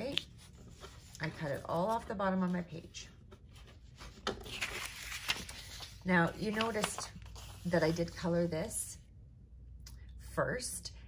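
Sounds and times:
paper rustling: 0.0s - 8.2s.

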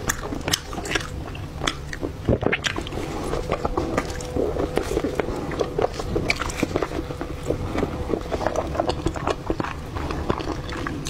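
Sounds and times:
chewing with mouth smacks: 0.0s - 11.0s.

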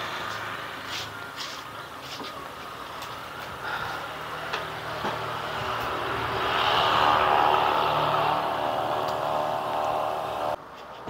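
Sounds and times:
vehicle passing: 2.6s - 10.6s.

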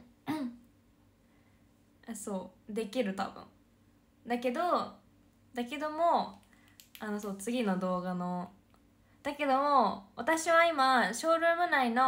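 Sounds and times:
woman clearing her throat: 0.2s - 0.7s.

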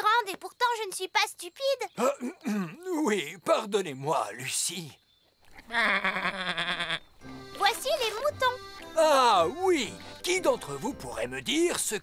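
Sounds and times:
cartoon sheep bleating: 5.6s - 7.1s.

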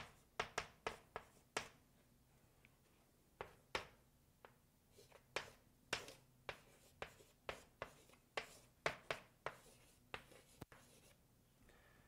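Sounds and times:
chalk tapping on blackboard: 0.0s - 1.8s, 3.4s - 11.2s.

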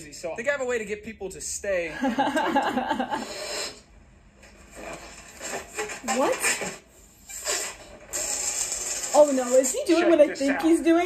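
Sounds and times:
woman laughing: 2.0s - 3.3s.

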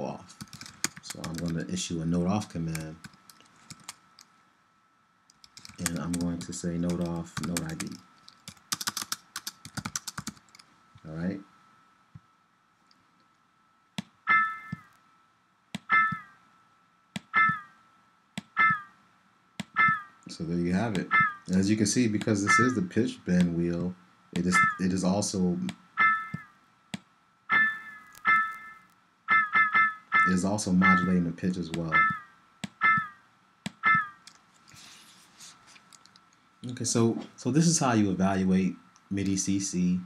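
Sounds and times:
faint steady high tone: 13.2s - 18.0s, 19.8s - 26.6s, 27.5s - 34.2s.

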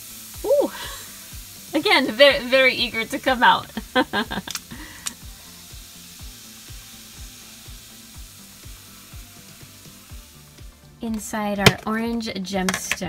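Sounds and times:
fizzing potion hiss: 0.0s - 10.6s
background music with beat: 3.6s - 12.2s.

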